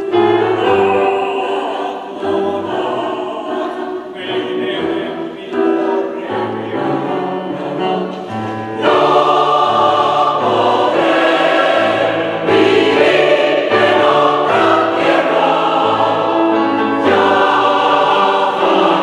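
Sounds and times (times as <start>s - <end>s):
mixed choir singing: 0.0s - 19.0s.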